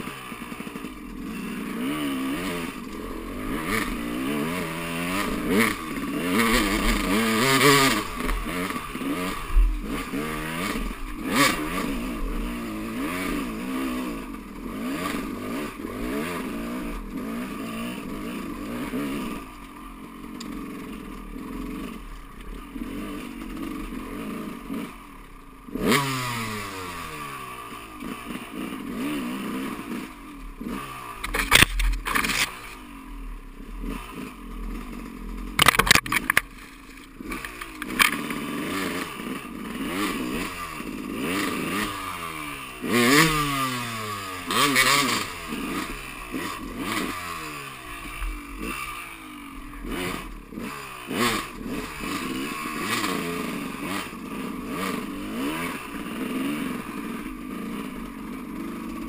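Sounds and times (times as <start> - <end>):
dirt bike engine revving: 0.0 - 59.0
bike knocking and rattling over bumps: 0.4 - 26.1, 28.0 - 48.9.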